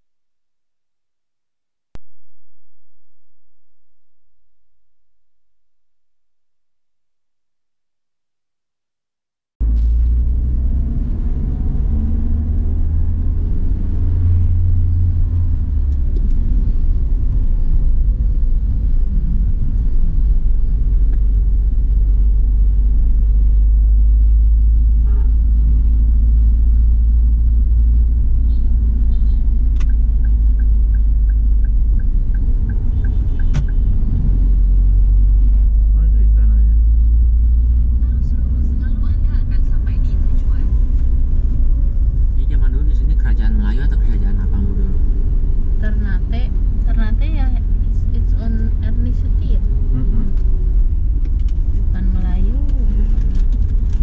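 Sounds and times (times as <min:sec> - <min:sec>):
engine and road rumble: 0:09.6 - 0:54.0.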